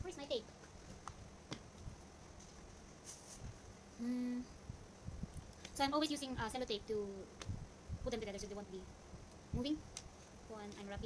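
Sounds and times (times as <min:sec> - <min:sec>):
woman humming: 0:04.0 - 0:04.6.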